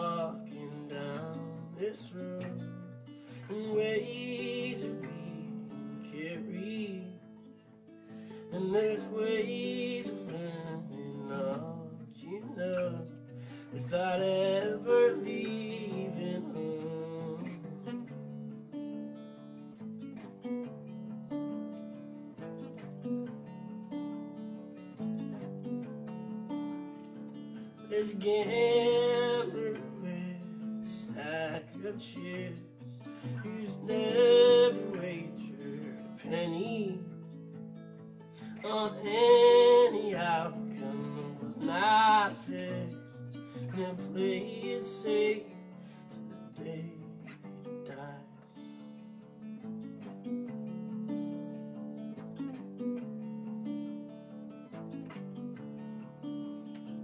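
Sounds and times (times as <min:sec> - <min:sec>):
man singing: 0:00.0 - 0:07.3, 0:08.5 - 0:17.9, 0:27.9 - 0:37.4, 0:38.4 - 0:48.7
fingerpicked acoustic guitar: 0:00.0 - 0:57.0.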